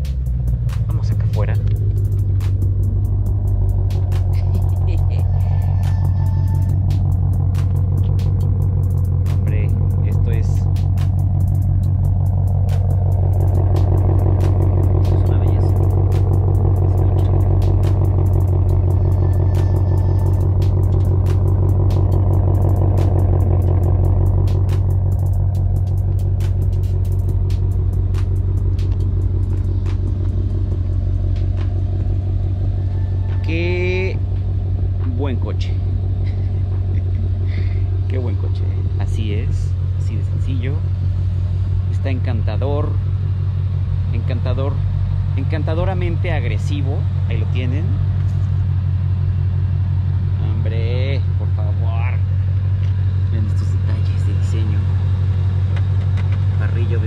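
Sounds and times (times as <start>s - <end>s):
car engine idling: 0.0s - 57.0s.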